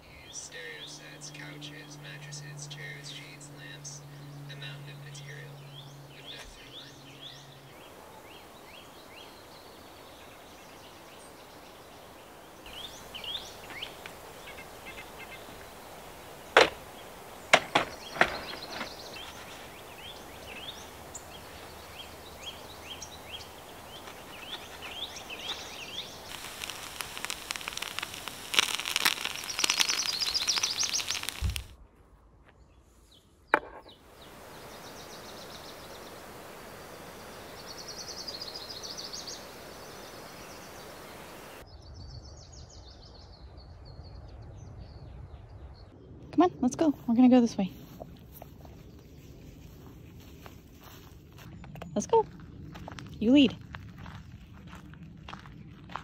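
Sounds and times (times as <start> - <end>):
small birds chirping: 0.0 - 31.8, 32.6 - 56.0
dense crackling rustle: 0.0 - 32.0, 34.0 - 41.6, 46.0 - 56.0.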